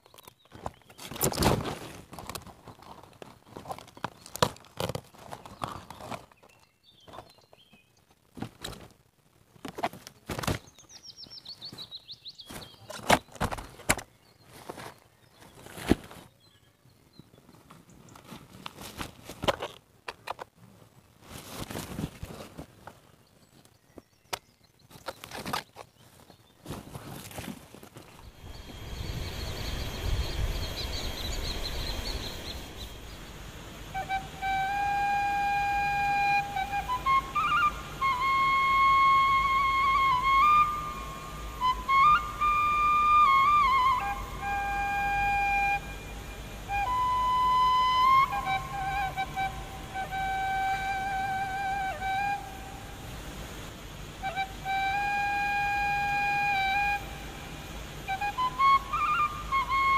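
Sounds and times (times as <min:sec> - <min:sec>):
steady rushing noise: 0:28.1 - 0:38.4
slow flute melody: 0:28.1 - 0:53.4, 0:54.0 - 0:59.9.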